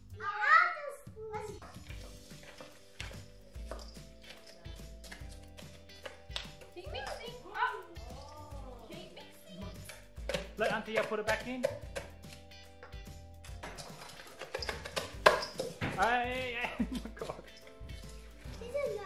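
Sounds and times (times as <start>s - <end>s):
background music with steady bass: 0.0s - 19.0s
wooden spoons stirring in metal bowl: 1.6s - 12.5s, 13.5s - 19.0s
children's voices: 18.5s - 19.0s.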